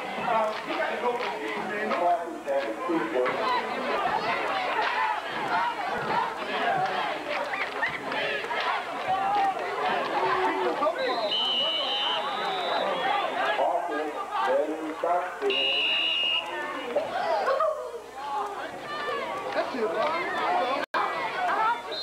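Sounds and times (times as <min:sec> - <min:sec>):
spectators talking and shouting: 0:00.0 - 0:22.0
referees' whistles blowing: 0:11.0 - 0:13.5, 0:15.4 - 0:16.8, 0:21.7 - 0:22.0.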